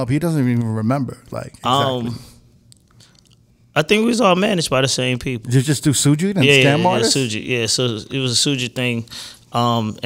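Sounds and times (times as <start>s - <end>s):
man talking: 0.0s - 2.3s, 3.8s - 10.0s
faint mouth clicks: 2.7s - 3.4s.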